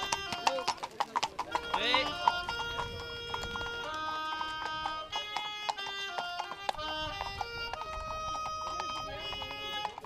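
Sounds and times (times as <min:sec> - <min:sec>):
horse hooves clip-clopping on road: 0:00.0 - 0:10.0
instrumental background music: 0:01.5 - 0:10.0.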